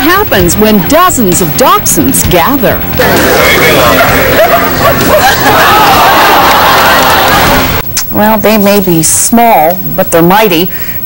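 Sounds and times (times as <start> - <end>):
crowd chatter: 2.8 - 7.8
dogs barking and yipping: 2.9 - 7.8.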